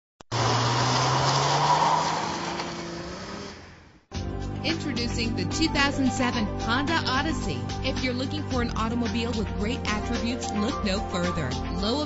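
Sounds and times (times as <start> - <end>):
car engine and tyre noise: 0.2 - 4.1.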